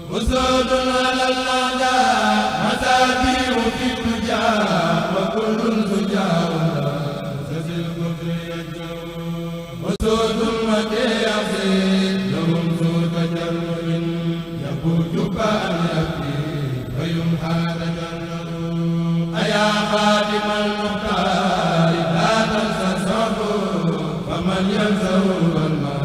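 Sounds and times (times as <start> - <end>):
person chanting religious verse: 0.0 - 26.0.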